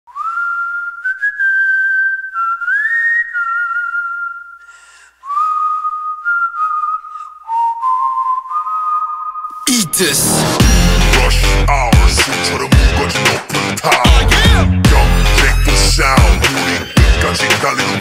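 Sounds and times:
person whistling a slow tune: 0.1s - 9.6s
loud electronic music: 9.7s - 18.0s.

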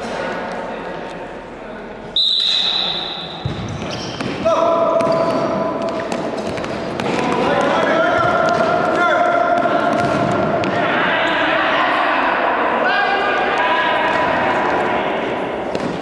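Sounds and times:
ball kicks and bounces: 3.4s - 4.4s, 5.0s - 8.8s, 9.5s - 10.8s
footfalls on hard court: 3.4s - 10.8s
people shouting: 10.6s - 15.4s.

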